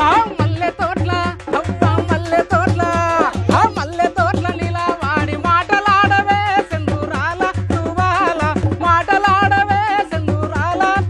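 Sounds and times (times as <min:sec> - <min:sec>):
person singing a melody: 0:00.0 - 0:11.0
steady drum beat: 0:00.0 - 0:11.0.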